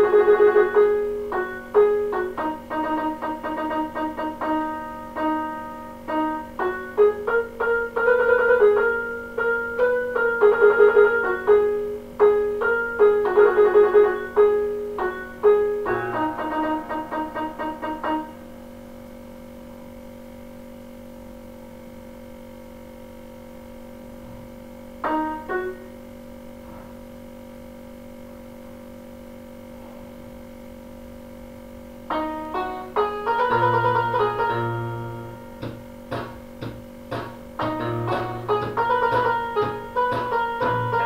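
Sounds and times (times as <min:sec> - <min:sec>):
electronic keyboard melody: 0:00.0 - 0:18.6, 0:25.0 - 0:26.0, 0:32.1 - 0:41.0.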